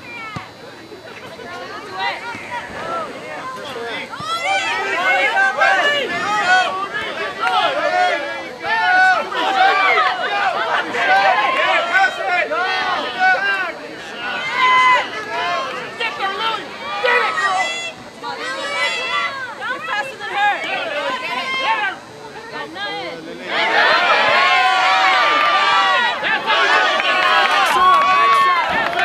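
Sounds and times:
crowd shouting and cheering: 0:00.0 - 0:29.0.

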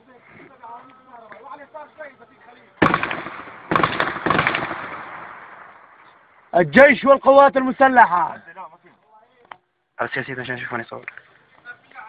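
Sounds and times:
rapid gunfire echoing: 0:02.8 - 0:05.7.

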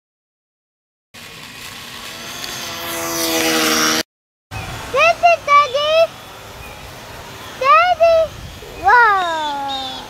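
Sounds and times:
electric model plane motor buzzing: 0:01.2 - 0:04.0.

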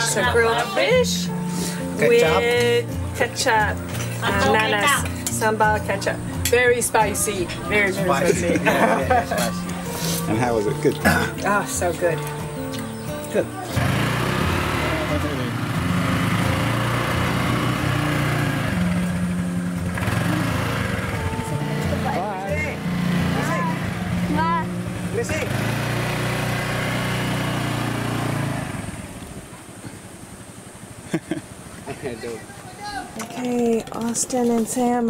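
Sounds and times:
scooter engine idling and revving: 0:00.0 - 0:32.2.

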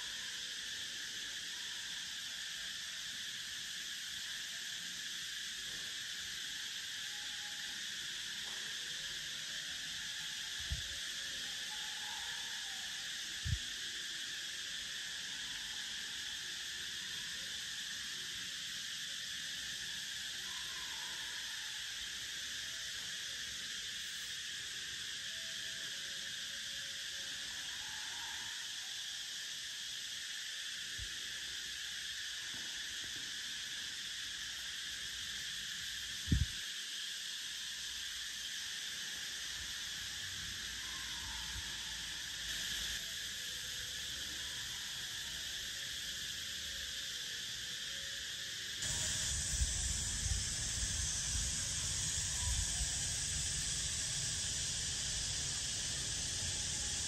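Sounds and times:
high-pitched insect chorus: 0:00.0 - 0:57.0.

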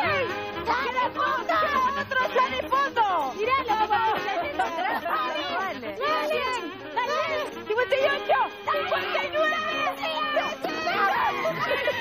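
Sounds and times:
babble of voices: 0:00.0 - 0:12.0.

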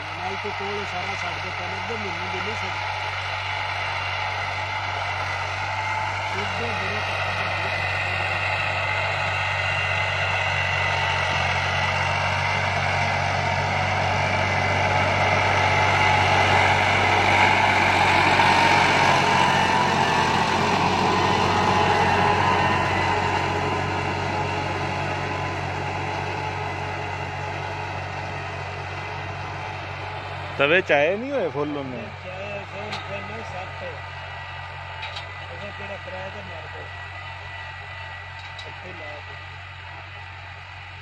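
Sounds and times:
tractor engine under load: 0:00.0 - 0:41.0.

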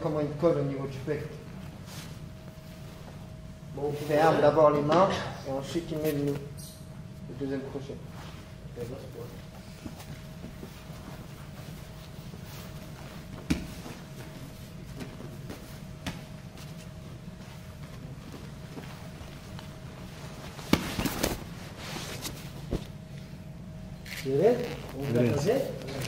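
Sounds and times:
low room hum: 0:00.0 - 0:26.0
scuffs and knocks on mats: 0:09.8 - 0:19.6.

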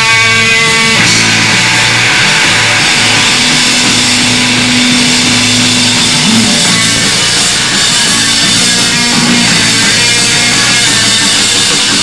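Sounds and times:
distorted electric guitar: 0:00.0 - 0:12.0
punk rock band playing: 0:00.0 - 0:12.0.

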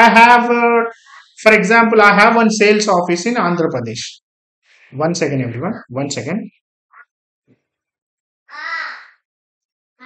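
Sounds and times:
crow cawing: 0:08.5 - 0:09.2.

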